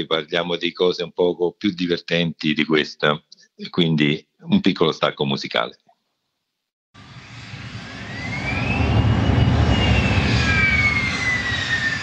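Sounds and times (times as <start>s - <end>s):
jet aircraft flyby: 7.0s - 12.0s.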